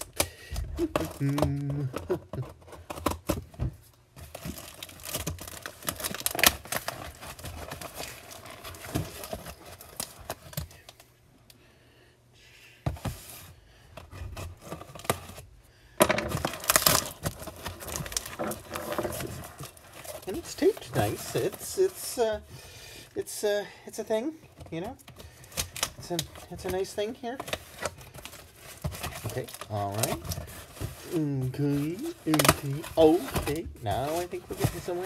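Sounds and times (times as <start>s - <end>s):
cardboard box rustling: 0.8s - 10.6s, 16.3s - 22.5s, 24.6s - 35.0s
tape tearing and crackling: 4.2s - 11.1s, 16.1s - 22.3s, 25.4s - 35.0s.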